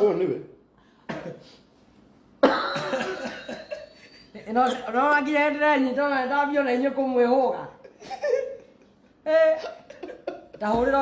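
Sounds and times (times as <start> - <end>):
man coughing: 1.1 - 1.6, 2.4 - 3.9.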